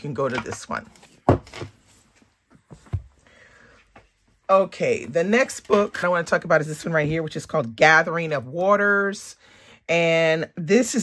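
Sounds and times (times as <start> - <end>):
book thumping on wooden table: 1.2 - 1.8, 2.7 - 3.1.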